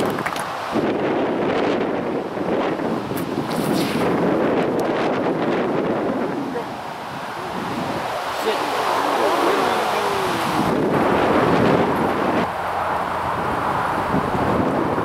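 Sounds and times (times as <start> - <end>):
strong wind buffeting microphone: 0.0 - 15.0.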